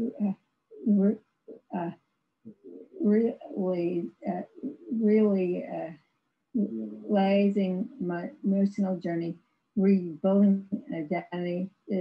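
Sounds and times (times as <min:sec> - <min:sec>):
woman speaking haltingly: 0:00.0 - 0:00.3, 0:00.9 - 0:01.9, 0:03.0 - 0:05.9, 0:06.6 - 0:12.0.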